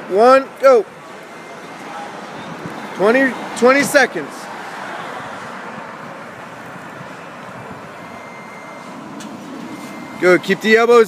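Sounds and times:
road traffic rush: 0:00.0 - 0:11.0.

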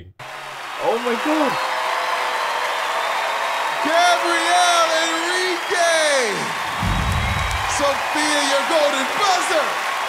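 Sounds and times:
audience applauding and cheering: 0:00.2 - 0:10.0.

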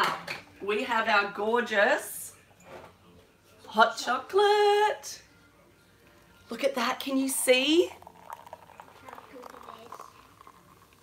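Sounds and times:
liquid pouring into a mug: 0:07.0 - 0:11.0.

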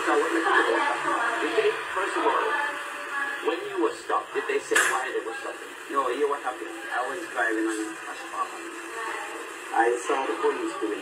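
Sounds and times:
man speaking on television: 0:00.0 - 0:02.6, 0:03.4 - 0:08.7, 0:09.7 - 0:11.0.

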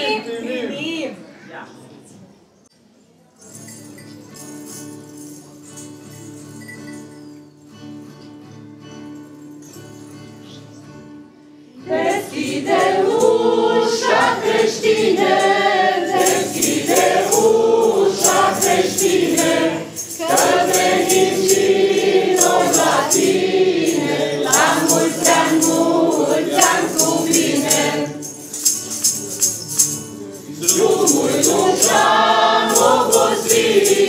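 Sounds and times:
jingling shaken percussion: 0:03.3 - 0:10.9, 0:11.9 - 0:34.0
mixed choir singing a carol: 0:11.8 - 0:34.0.

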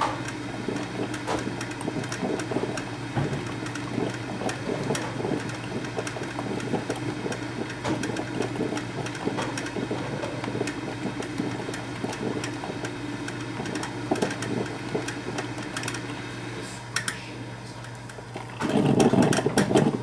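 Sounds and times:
coffee maker gurgling: 0:00.0 - 0:20.0
steady low hum: 0:00.0 - 0:20.0.

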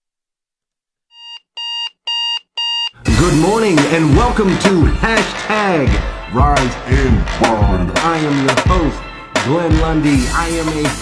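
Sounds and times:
alarm clock beeping: 0:01.1 - 0:03.0.

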